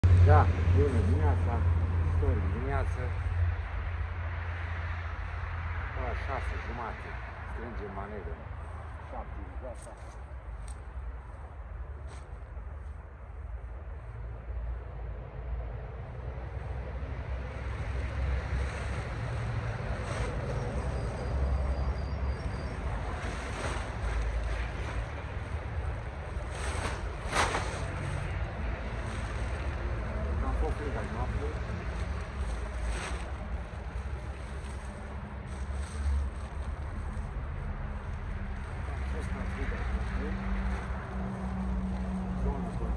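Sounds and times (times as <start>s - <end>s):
wind rumble: 0.0s - 42.9s
tarp rustling and crackling: 17.5s - 42.8s.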